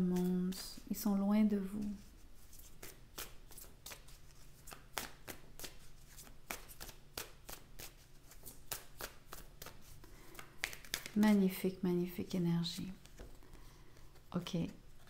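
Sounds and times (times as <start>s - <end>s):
cards shuffled by hand: 1.7s - 11.4s, 12.9s - 15.0s.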